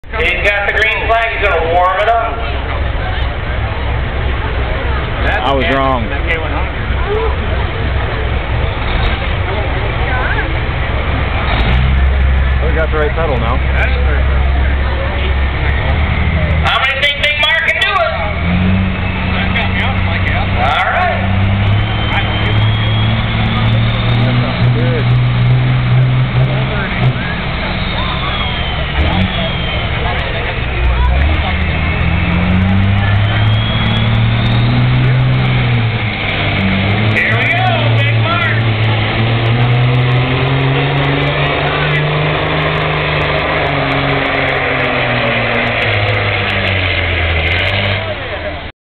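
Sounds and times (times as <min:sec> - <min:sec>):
crowd voices: 0:00.0 - 0:48.7
diesel truck engine under load: 0:00.0 - 0:48.7.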